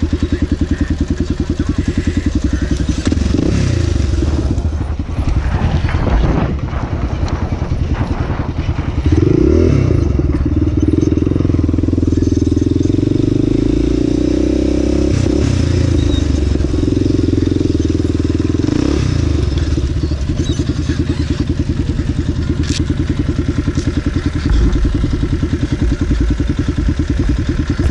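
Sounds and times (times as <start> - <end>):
dirt bike engine: 0.0 - 27.9.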